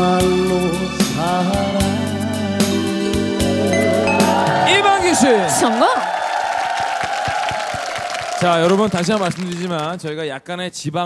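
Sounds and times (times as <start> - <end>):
held musical chord: 3.0 - 5.9
studio audience clapping and cheering: 3.6 - 10.3.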